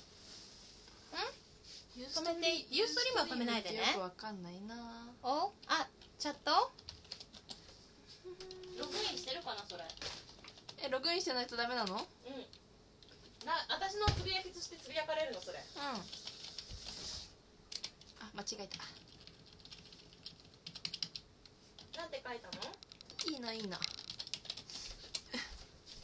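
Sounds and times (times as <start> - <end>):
computer keyboard typing: 5.6 - 7.7, 9.2 - 12.1, 15.3 - 17.0, 17.7 - 25.3.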